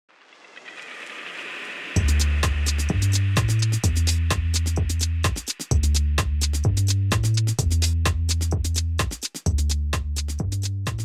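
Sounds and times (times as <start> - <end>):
intro riser noise: 0.1 - 5.7
electronic music hit with bass: 1.8 - 5.1.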